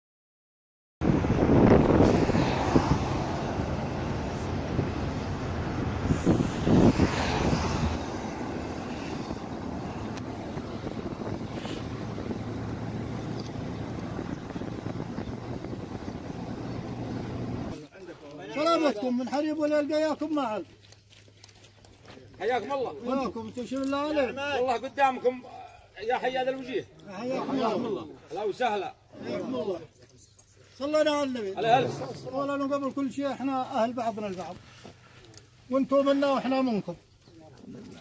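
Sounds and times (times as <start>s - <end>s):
wind on microphone: 1.0s - 17.8s
road noise: 1.0s - 38.0s
vehicle engine hum: 1.2s - 17.8s
voices: 2.2s - 20.8s, 21.8s - 38.0s.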